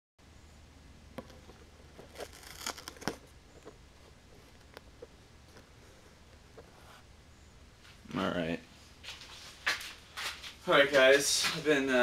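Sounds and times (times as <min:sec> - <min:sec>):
low steady hum: 0:00.2 - 0:12.0
crinkly rustle: 0:01.3 - 0:04.7.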